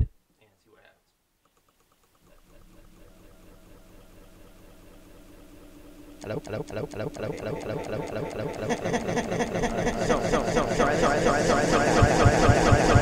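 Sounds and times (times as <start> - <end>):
audio playback glitch stuttering: 6.2 - 13.0.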